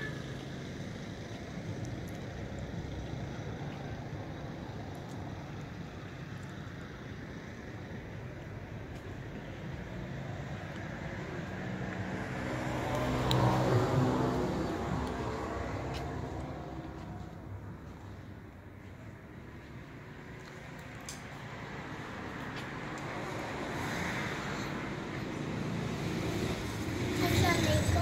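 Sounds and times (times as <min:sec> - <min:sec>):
road traffic rumble: 0:00.0 - 0:28.0
vehicle passing close: 0:09.7 - 0:18.3, 0:20.1 - 0:28.0.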